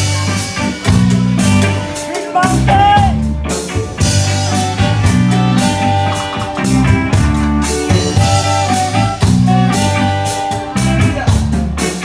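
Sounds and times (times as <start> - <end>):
live reggae band playing: 0.0 - 12.0.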